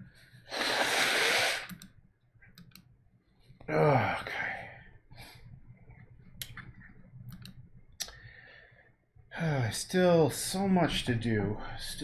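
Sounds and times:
person blowing nose into tissue: 0:00.4 - 0:01.7.

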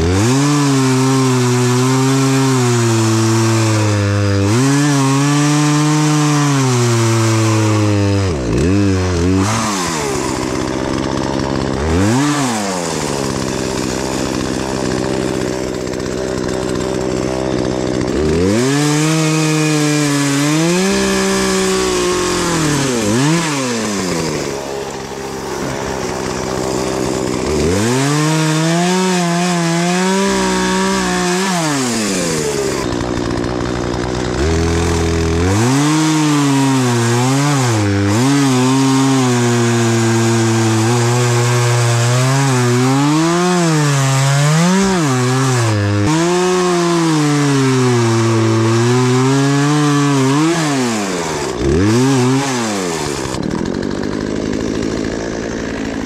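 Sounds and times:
chainsaw cutting wood: 0:00.0 - 0:56.0.

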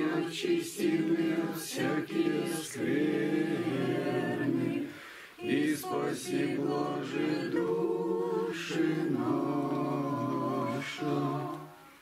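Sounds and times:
women's choir singing a hymn: 0:00.0 - 0:12.0.

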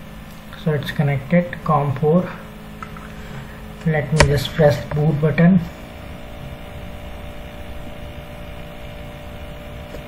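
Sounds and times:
steady background hum with hiss: 0:00.0 - 0:10.0.

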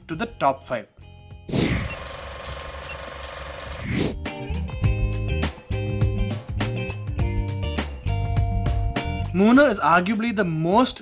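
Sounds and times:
film projector clattering: 0:01.8 - 0:03.9.

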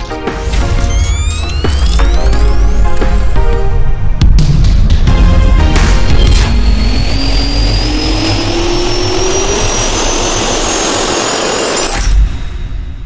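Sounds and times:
jet engine spooling up: 0:06.0 - 0:12.1.

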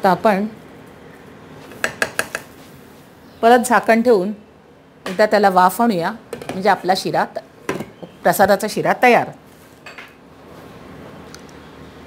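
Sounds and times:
spatula knocking on pan rim: 0:01.8 - 0:02.5.

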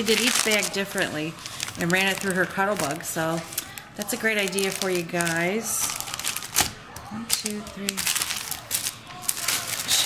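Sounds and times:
plastic and paper crinkling: 0:00.0 - 0:10.0.

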